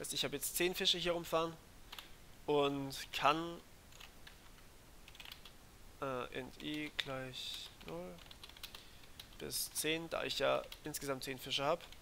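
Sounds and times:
faint keyboard typing: 1.9s - 3.0s, 3.9s - 5.6s, 6.4s - 12.0s.

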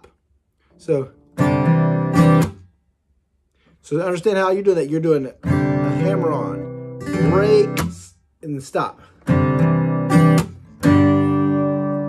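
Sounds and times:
acoustic guitar strumming: 1.0s - 2.7s, 5.4s - 8.1s, 9.1s - 12.0s.

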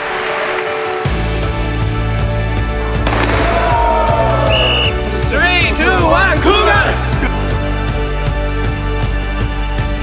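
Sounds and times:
background music with steady beat: 0.0s - 10.0s
short high whistle blast: 4.4s - 5.0s.

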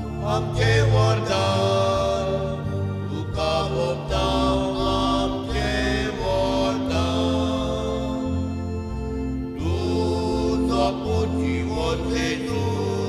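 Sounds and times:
sustained instrumental accompaniment: 0.0s - 13.0s
voices singing a hymn: 0.0s - 13.0s.

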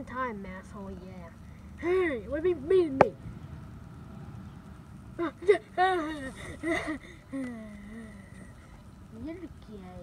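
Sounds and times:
low even outdoor rumble: 0.0s - 10.0s.

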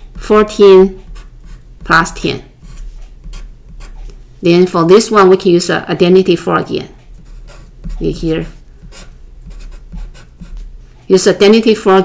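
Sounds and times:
marker pen writing on paper: 0.0s - 4.2s, 7.0s - 10.7s.

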